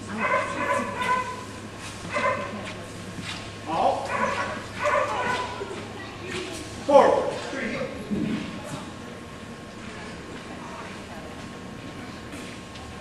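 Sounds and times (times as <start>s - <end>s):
dog yipping and barking: 0.2s - 1.4s, 2.1s - 2.5s, 4.1s - 5.6s.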